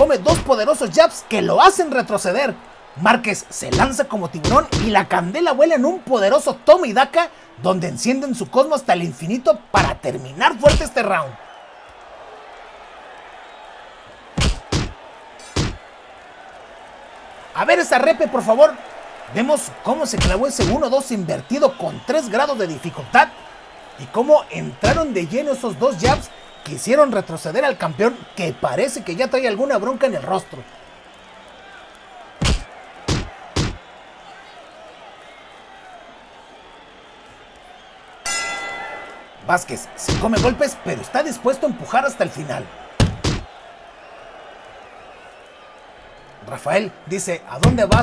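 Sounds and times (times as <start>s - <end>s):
arena crowd noise: 0.0s - 48.0s
loud sharp impacts: 14.4s - 15.8s, 32.4s - 33.8s, 43.0s - 43.5s
ringing shimmering transition effect: 38.3s - 39.3s.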